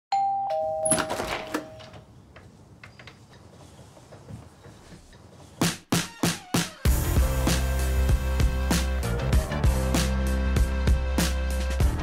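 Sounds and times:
two-note doorbell chime: 0:00.1 - 0:01.8.

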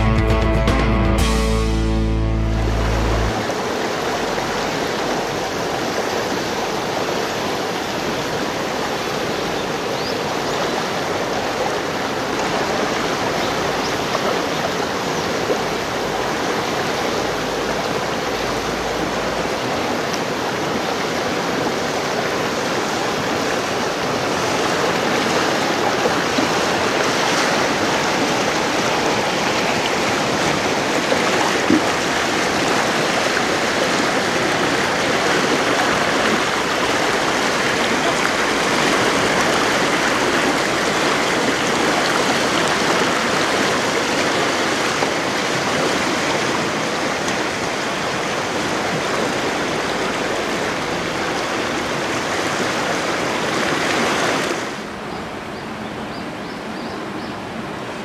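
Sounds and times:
river rapids rushing: 0:01.2 - 0:58.0.

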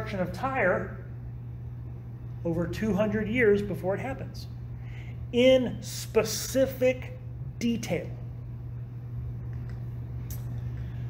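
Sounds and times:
faint low rumbling: 0:00.0 - 0:11.0
steady low hum: 0:00.0 - 0:11.0.

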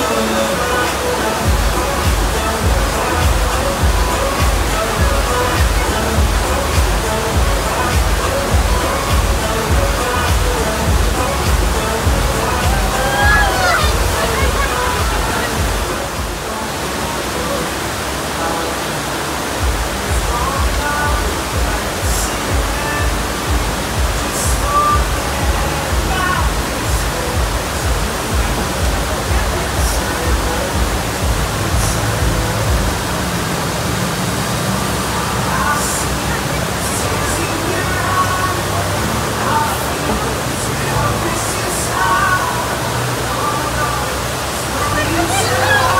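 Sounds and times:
music with steady beat: 0:00.0 - 0:16.5, 0:19.6 - 0:33.4
scattered voices: 0:00.0 - 0:33.5, 0:34.8 - 0:45.9
rushing water from wave machine: 0:00.0 - 0:45.9.

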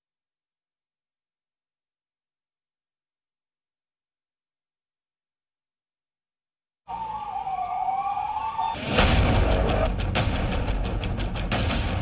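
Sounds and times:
siren wailing: 0:06.9 - 0:09.9.

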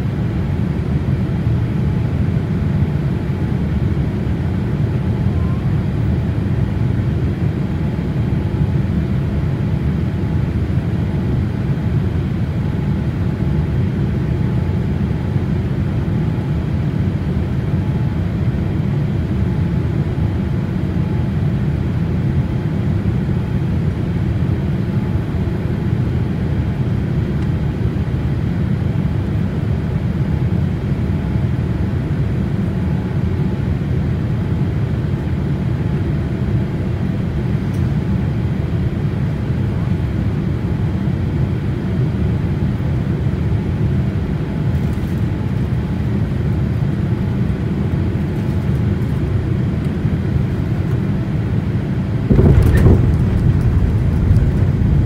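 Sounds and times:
aircraft cabin engine rumble: 0:00.0 - 0:55.0.

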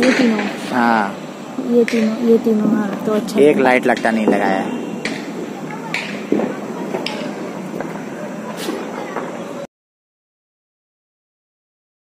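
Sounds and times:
steady outdoor noise: 0:00.0 - 0:09.7.

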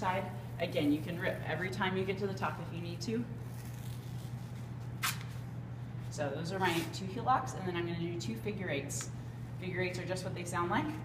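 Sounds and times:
low steady hum: 0:00.0 - 0:11.0
rasp of athletic tape: 0:03.5 - 0:05.4.

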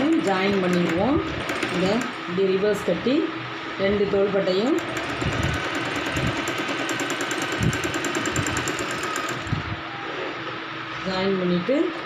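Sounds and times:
sewing machine stitching: 0:00.0 - 0:02.2, 0:04.7 - 0:09.5.

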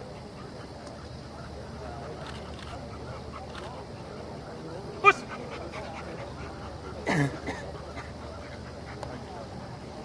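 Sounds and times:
distant voices murmuring: 0:00.0 - 0:10.0.

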